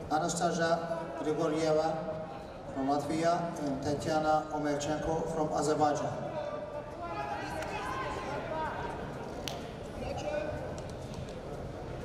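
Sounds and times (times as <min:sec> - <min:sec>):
voices echoing in hall: 0:00.0 - 0:12.0.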